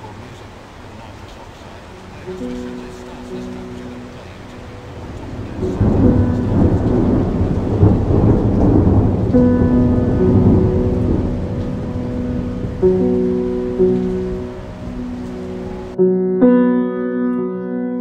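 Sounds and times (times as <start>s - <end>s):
rain: 0.0s - 16.0s
thunder rumbling: 0.0s - 16.0s
piano chords: 0.0s - 18.0s
synthesizer chords: 1.8s - 18.0s.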